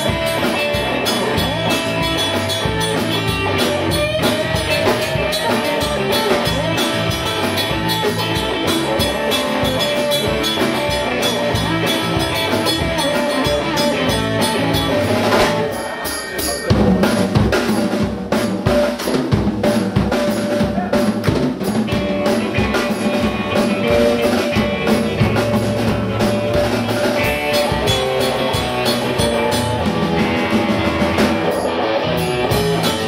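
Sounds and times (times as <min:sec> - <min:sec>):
drums hitting steadily: 0:00.0 - 0:33.0
rock band playing: 0:00.0 - 0:33.0.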